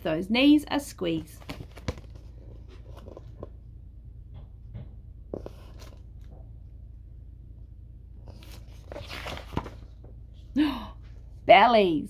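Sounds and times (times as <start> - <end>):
paper page rustling: 1.4 - 3.5, 5.4 - 6.0, 8.2 - 10.0.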